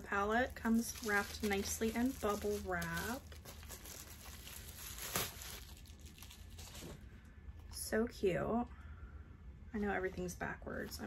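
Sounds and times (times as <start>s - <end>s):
bubble wrap crinkling: 0.0s - 7.2s.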